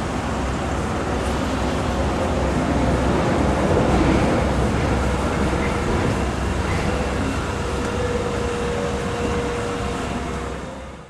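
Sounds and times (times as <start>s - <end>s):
passing traffic: 0.0s - 11.0s.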